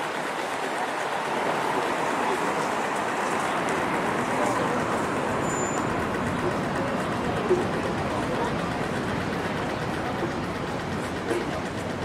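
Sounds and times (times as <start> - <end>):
traffic noise: 0.0 - 12.0
voices of passers-by: 0.0 - 12.0.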